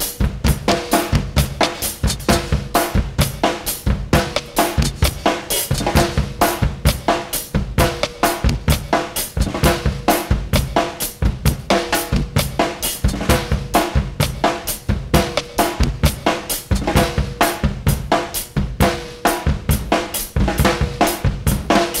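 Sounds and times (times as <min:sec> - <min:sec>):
drum kit beat: 0:00.0 - 0:22.0.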